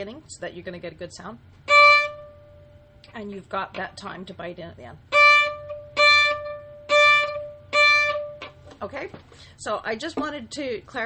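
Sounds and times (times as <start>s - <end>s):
violin staccato notes: 1.7s - 2.4s, 5.1s - 8.6s.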